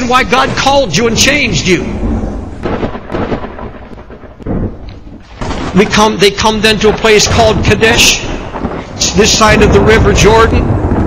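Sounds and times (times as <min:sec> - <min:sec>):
thunder rumbling: 0:00.0 - 0:11.0
rain hissing: 0:01.9 - 0:11.0.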